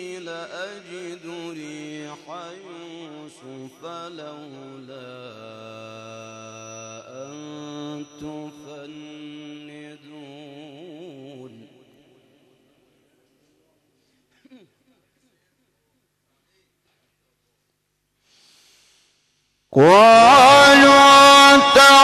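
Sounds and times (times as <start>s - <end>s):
man chanting recitation: 0.0s - 12.1s, 19.8s - 22.0s.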